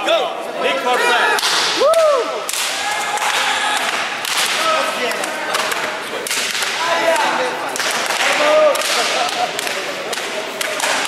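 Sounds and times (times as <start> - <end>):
men yelling and whooping: 0.6 - 5.2.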